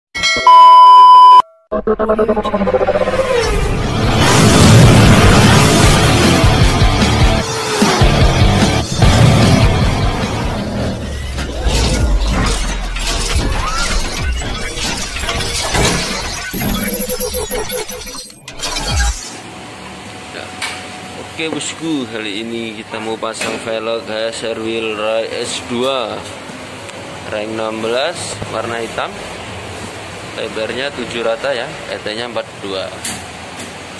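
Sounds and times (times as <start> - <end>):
bell-like chime: 0.2 - 0.8
loud steady beep: 0.4 - 1.6
impact and shatter effects: 1.8 - 17.6
fast rhythmic intro music: 3.9 - 10.8.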